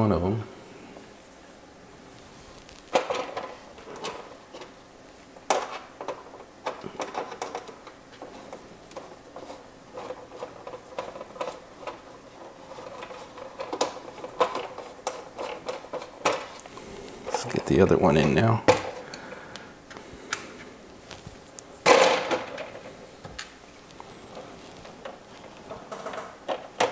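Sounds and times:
plastic parts clicking and knocking: 2.9 - 4.8, 5.4 - 16.6, 18.2 - 19.2, 21.8 - 26.9.

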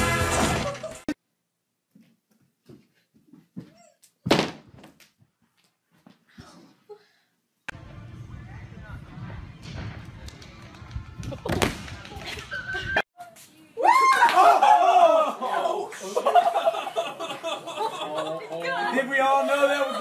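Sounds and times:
gymnast landing on crash mat: 4.2 - 4.9.

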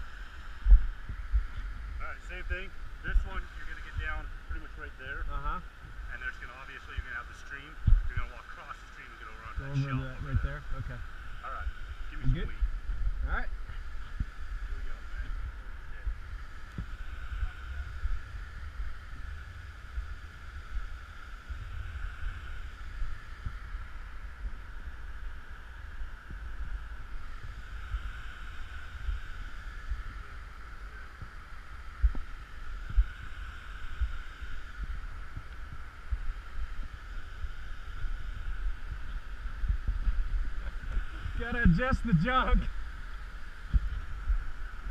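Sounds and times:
wind rumble on microphone: 0.0 - 44.9.

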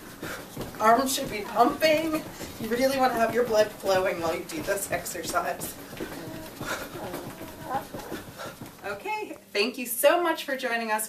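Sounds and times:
feet thudding on floor: 0.0 - 9.1.

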